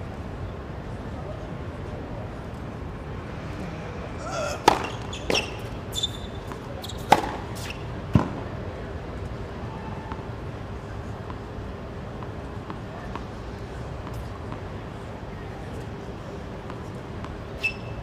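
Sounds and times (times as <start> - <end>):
murmur of spectators: 0.0 - 18.0
tennis ball hit with racket: 4.4 - 5.7, 6.5 - 8.4
tennis ball bouncing on court: 4.6 - 8.4.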